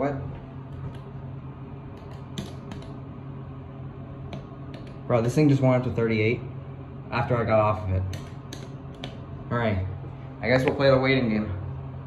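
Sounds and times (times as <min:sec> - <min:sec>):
low hum inside elevator: 0:00.0 - 0:12.0.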